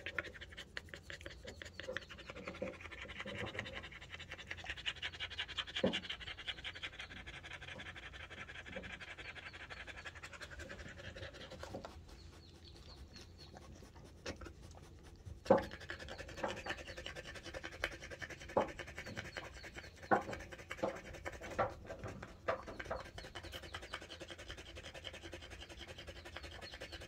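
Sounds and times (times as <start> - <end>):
dog panting rapidly: 0.0 - 27.0.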